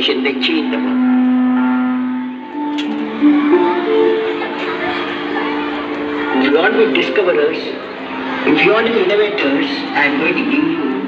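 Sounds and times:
music of long held notes: 0:00.9 - 0:11.0.

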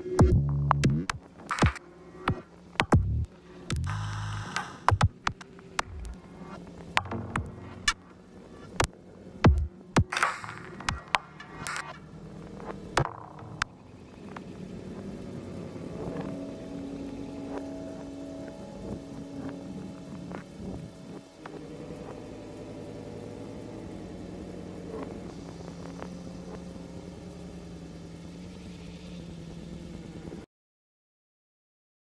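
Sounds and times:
low synthesized drone: 0:00.0 - 0:30.5.

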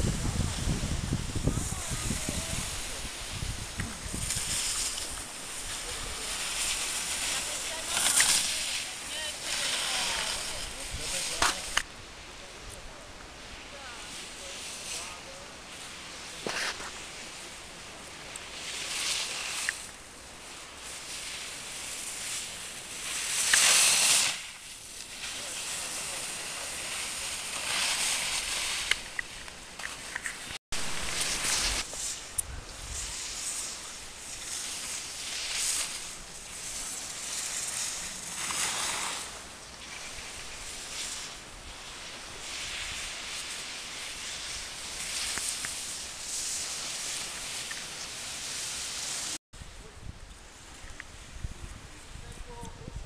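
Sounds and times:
wind rumbling on microphone: 0:00.0 - 0:14.7, 0:25.7 - 0:53.0
skis scraping over packed snow: 0:00.0 - 0:53.0.

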